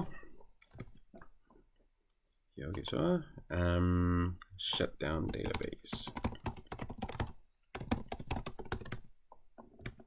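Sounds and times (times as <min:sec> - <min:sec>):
typing on computer keyboard: 0:00.6 - 0:01.0, 0:04.7 - 0:10.0.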